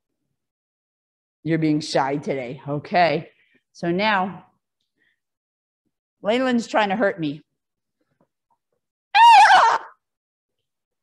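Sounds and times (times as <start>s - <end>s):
high-pitched vocal cry: 9.2s - 10.0s.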